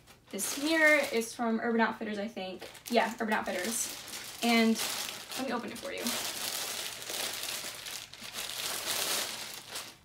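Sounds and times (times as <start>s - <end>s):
plastic bag crinkling: 0.0s - 1.4s, 2.6s - 10.0s.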